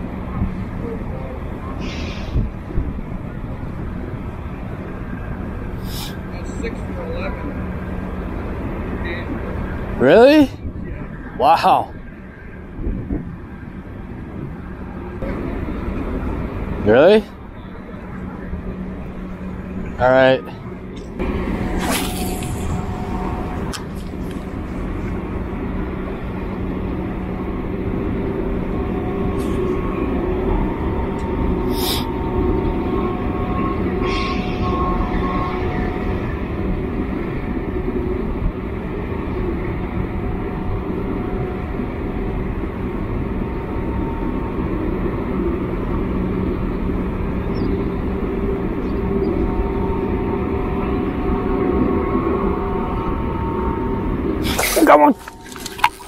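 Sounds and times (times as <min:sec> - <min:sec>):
mechanical drone with hum: 0:00.0 - 0:56.0
brief high hisses or clicks: 0:01.8 - 0:02.4.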